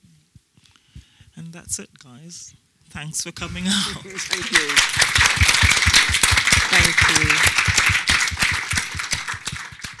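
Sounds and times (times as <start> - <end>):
audience applauding: 4.0 - 10.0.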